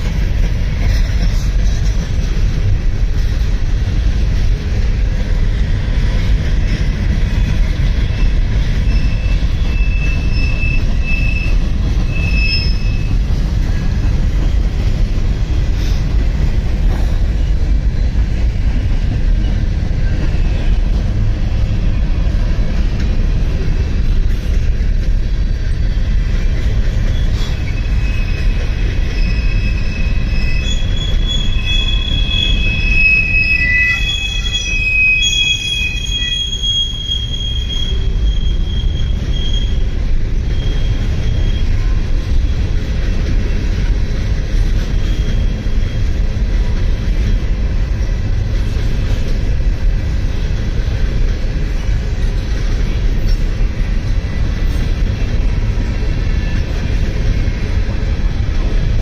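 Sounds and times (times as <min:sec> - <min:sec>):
freight train wheels rumbling: 0:00.0 - 0:59.0
wheel squeal: 0:07.4 - 0:14.0, 0:26.5 - 0:42.8, 0:44.8 - 0:46.3.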